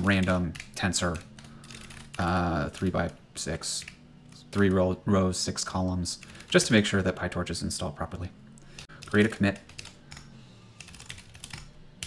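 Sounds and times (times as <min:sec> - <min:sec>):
computer keyboard typing: 0:00.0 - 0:04.7, 0:06.2 - 0:06.8, 0:08.7 - 0:12.0.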